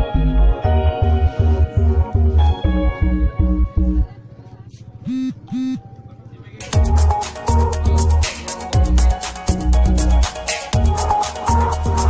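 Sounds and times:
short horn-like beeps: 5.1 - 5.9.

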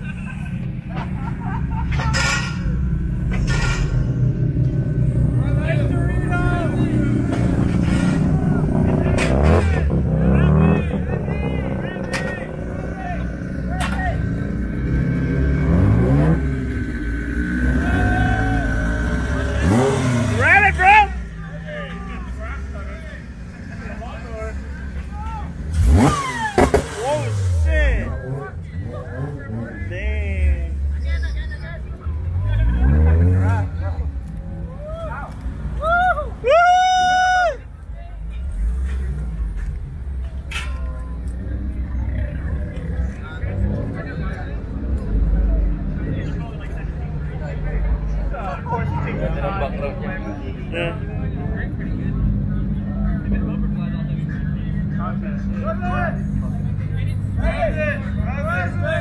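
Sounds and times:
car engines revving: 0.0 - 59.0
crowd voices: 0.0 - 59.0.

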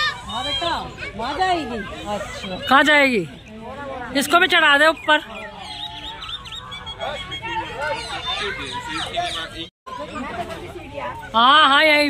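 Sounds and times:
bird calling with short high notes: 4.2 - 10.2.

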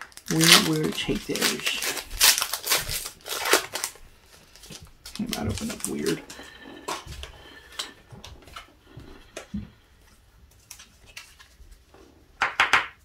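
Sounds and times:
foil wrapper crinkling: 0.0 - 7.1, 10.5 - 11.9.

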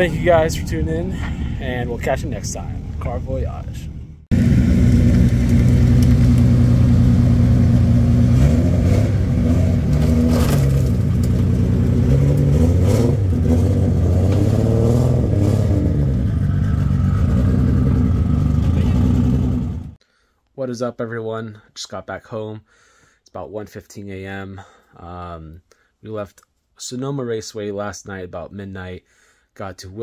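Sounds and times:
vehicle engine revving: 3.8 - 20.0.

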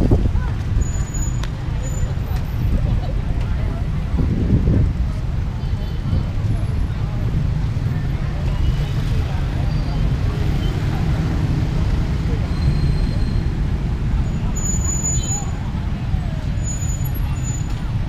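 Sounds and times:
cars and motorbikes passing: 0.0 - 18.0
murmur of passersby voices: 0.0 - 18.0.

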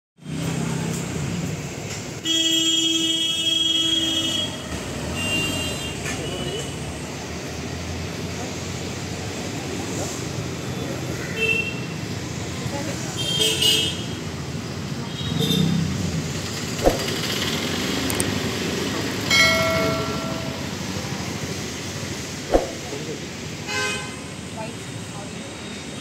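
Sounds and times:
road traffic hum: 0.2 - 2.4, 3.1 - 26.0.

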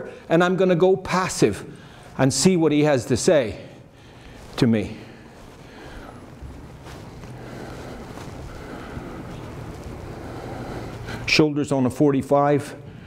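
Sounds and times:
low rumble and hum: 3.6 - 11.5.

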